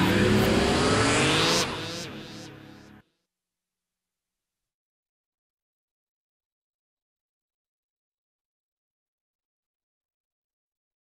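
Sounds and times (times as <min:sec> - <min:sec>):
rising synth sweep: 0:00.0 - 0:03.0.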